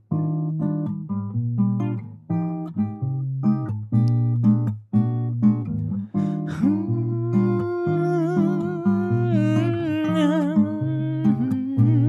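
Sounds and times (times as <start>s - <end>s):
acoustic guitar bossa nova: 0.0s - 12.0s
hummed melody with vibrato: 6.2s - 12.0s.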